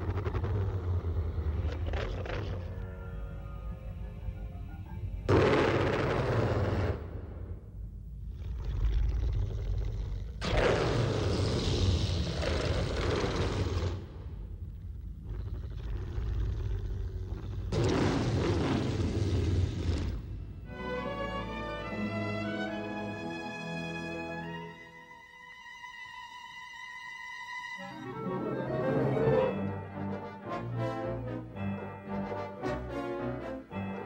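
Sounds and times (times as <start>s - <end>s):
low rumbling drone: 0.0s - 21.3s.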